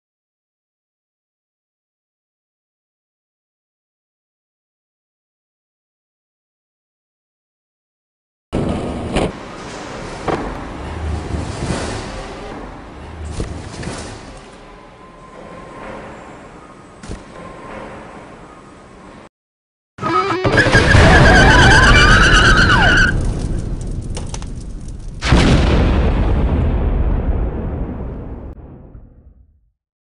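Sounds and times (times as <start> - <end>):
car tyres screeching: 20.0 - 23.3
low rumble with crackles: 21.0 - 29.6.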